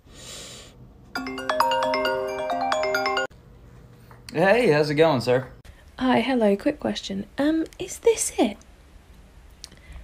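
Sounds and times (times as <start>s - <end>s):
phone ringtone chiming melody: 1.2s - 3.3s.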